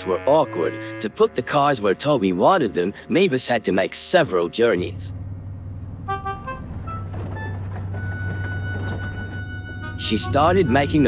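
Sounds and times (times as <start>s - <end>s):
diesel engine rumbling: 0.0s - 11.0s.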